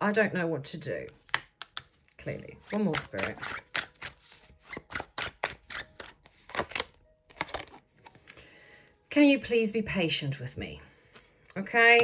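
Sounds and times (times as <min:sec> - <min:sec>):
cards being shuffled by hand: 0:01.2 - 0:08.3.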